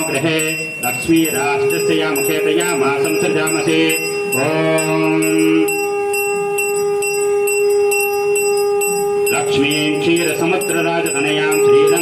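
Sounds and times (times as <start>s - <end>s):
brass hand bell ringing: 0.0s - 12.0s
person chanting a long note: 0.0s - 12.0s.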